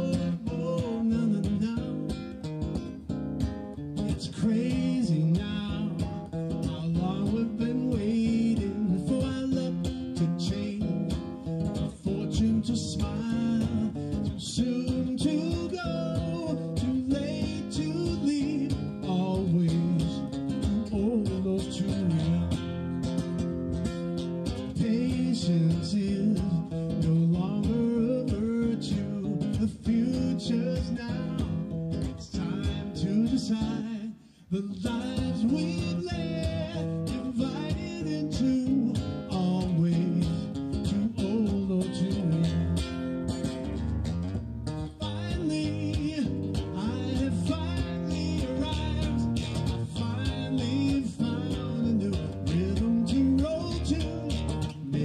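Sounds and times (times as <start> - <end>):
person singing: 0.0 - 2.2, 4.2 - 22.6, 24.7 - 42.8, 44.9 - 55.0
nylon-string guitar strummed and picked: 0.0 - 55.0.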